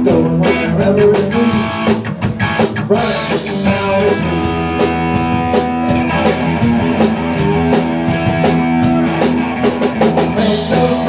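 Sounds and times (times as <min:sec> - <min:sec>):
drum kit beat with cymbals: 0:00.0 - 0:11.0
electric guitar chords: 0:00.0 - 0:11.0.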